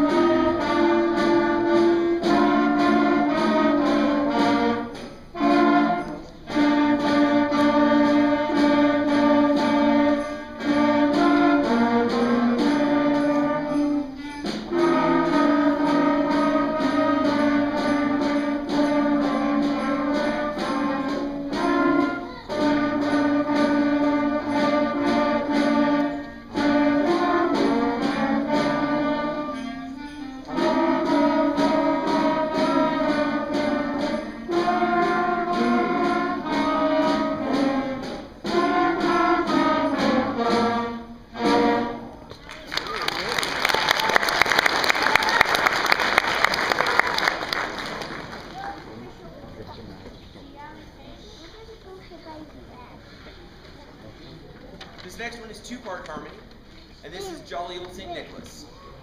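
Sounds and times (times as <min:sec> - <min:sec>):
concert band playing: 0:00.0 - 0:48.7.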